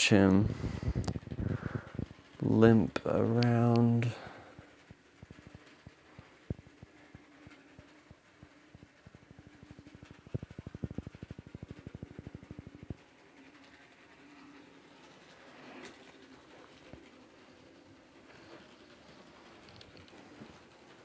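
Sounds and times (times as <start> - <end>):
rapid clicking of wheels and gears: 0.2 - 21.0
model train motor hum: 0.3 - 21.0.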